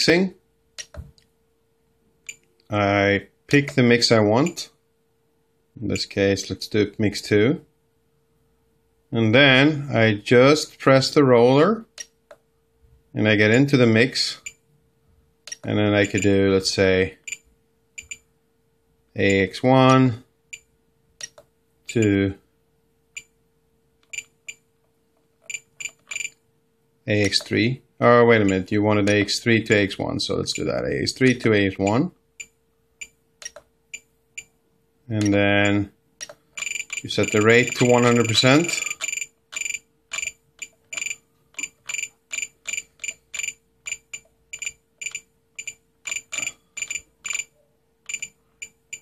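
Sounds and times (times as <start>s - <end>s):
radio transmitter beeps: 36.6s - 40.3s.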